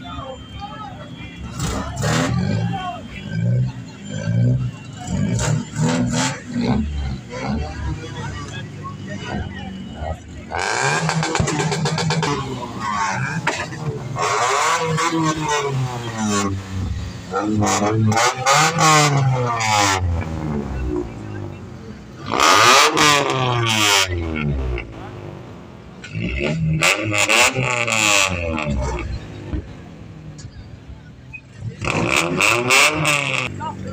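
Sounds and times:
crowd voices shouting: 0.0 - 21.5
car engines revving: 0.0 - 33.9.

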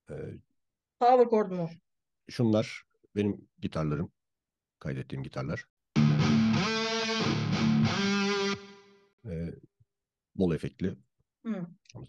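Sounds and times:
distorted electric guitar chords: 6.0 - 8.8.

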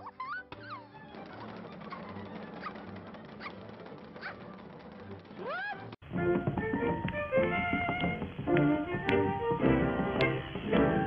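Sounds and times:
high squeaks: 0.0 - 6.0.

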